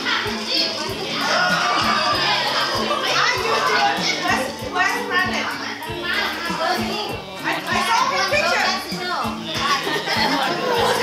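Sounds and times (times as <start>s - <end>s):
children shouting: 0.0s - 4.6s
music with a steady beat: 0.0s - 11.0s.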